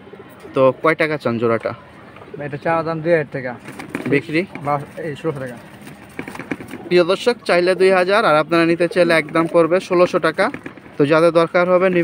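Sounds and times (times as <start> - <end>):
pigeons cooing: 3.6 - 11.0.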